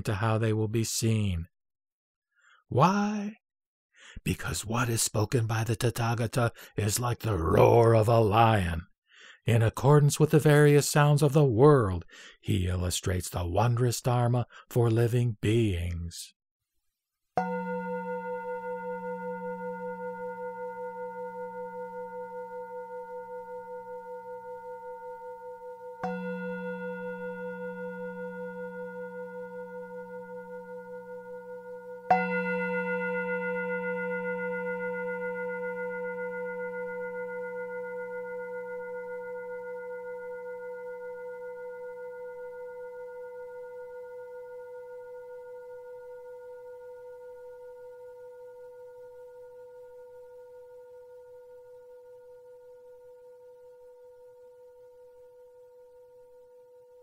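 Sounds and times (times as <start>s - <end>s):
struck bell ringing: 17.4s - 46.7s.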